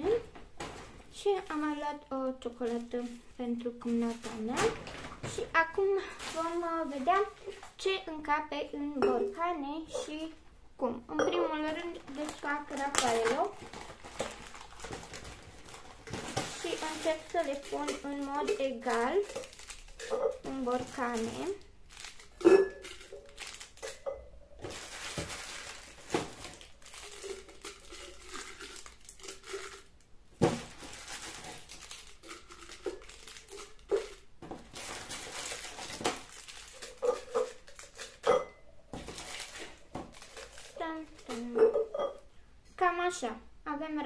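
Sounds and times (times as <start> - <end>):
wrappers crinkling: 0.0 - 8.2, 11.5 - 41.9
candies clinking against glass: 16.0 - 30.0, 30.8 - 42.3.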